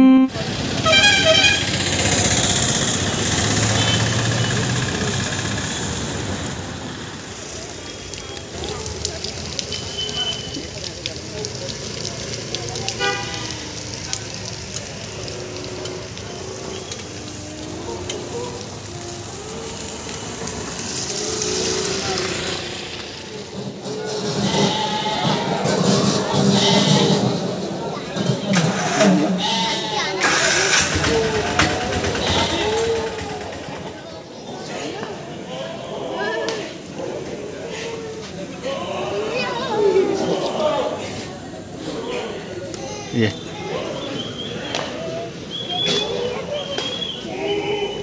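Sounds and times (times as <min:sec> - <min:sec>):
vehicle horn toots: 0:00.0 - 0:01.8, 0:13.0 - 0:13.6
highway traffic rushing: 0:00.3 - 0:09.6, 0:10.4 - 0:48.0
background voices talking: 0:02.9 - 0:48.0.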